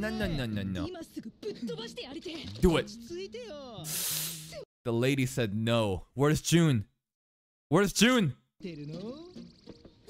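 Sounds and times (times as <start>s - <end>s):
sharp hiss: 3.9s - 4.6s.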